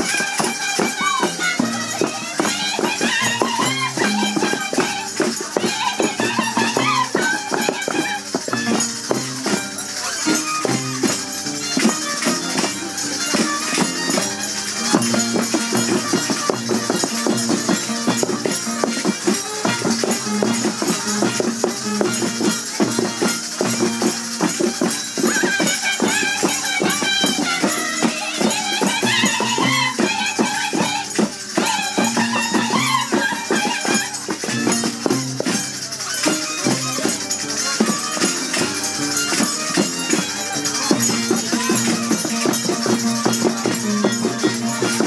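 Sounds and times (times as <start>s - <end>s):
violin playing dance tune: 0.0s - 45.0s.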